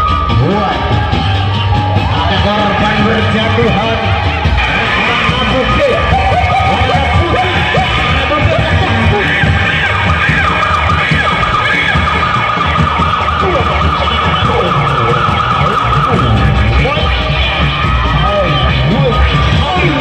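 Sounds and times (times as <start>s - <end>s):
drums: 0.0s - 20.0s
sliding melodic pitches: 0.0s - 20.0s.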